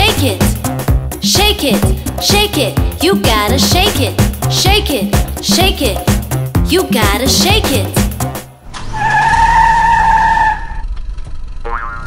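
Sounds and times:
high tyre squeal: 0:08.6 - 0:11.2.

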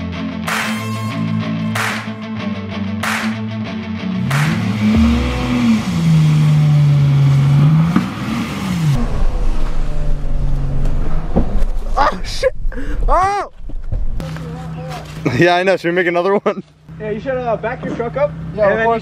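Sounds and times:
background music: 0:00.0 - 0:06.3
vehicle engine revving: 0:04.1 - 0:11.9.

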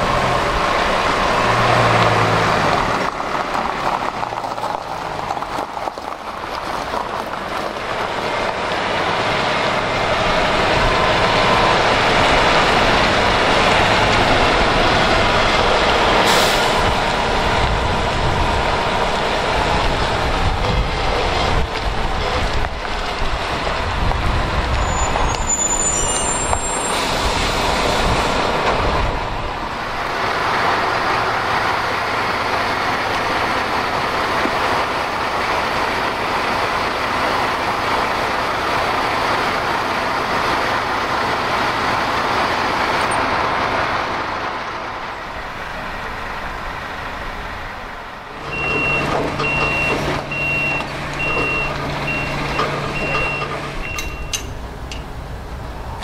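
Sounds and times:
truck diesel engine running: 0:00.0 - 0:56.0
reversing alarm beeping: 0:48.5 - 0:54.5.

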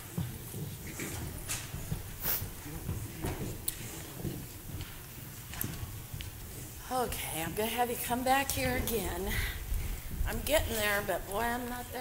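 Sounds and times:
footsteps and shuffling: 0:00.0 - 0:12.0.

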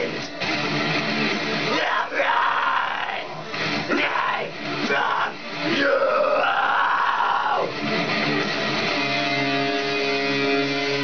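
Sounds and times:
backing music: 0:00.0 - 0:06.0, 0:07.6 - 0:11.0
man screaming metal vocals: 0:01.7 - 0:07.8.

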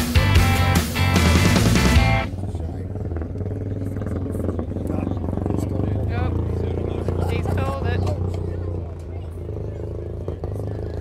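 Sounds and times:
motorcycle engine droning: 0:00.0 - 0:11.0
people talking: 0:02.2 - 0:11.0.

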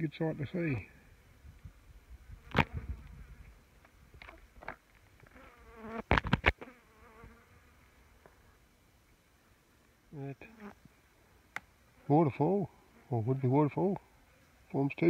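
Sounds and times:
flies buzzing: 0:01.1 - 0:08.8.

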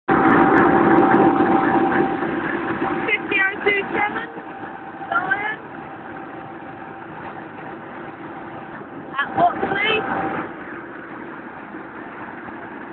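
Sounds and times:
locomotive humming: 0:00.1 - 0:12.9
voices: 0:03.0 - 0:05.9, 0:09.1 - 0:10.3.

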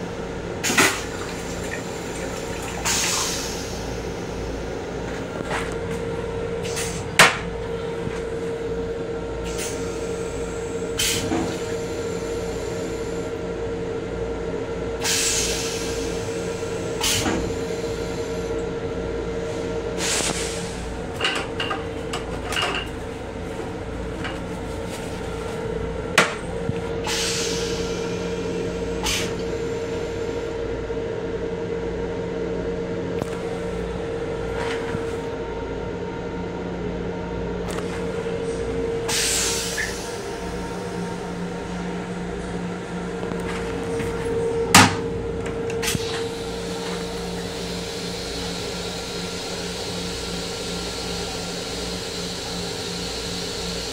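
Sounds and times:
train running noise and hum: 0:00.0 - 0:53.9.

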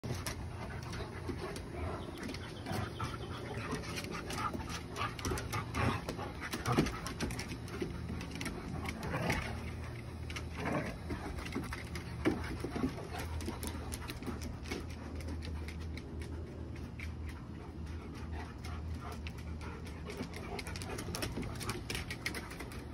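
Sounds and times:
claws and paws on deck boards: 0:00.0 - 0:22.9
dogs panting: 0:00.0 - 0:22.9.

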